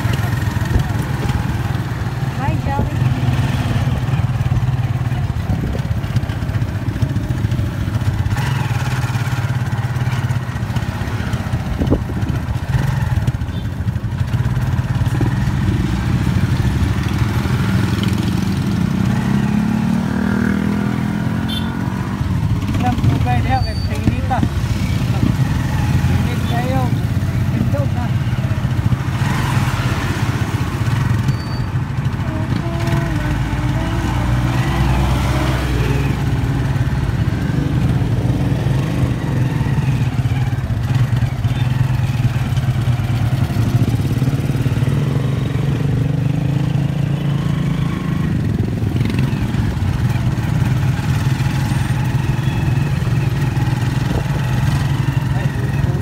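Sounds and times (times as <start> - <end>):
street traffic noise: 0.0 - 56.0.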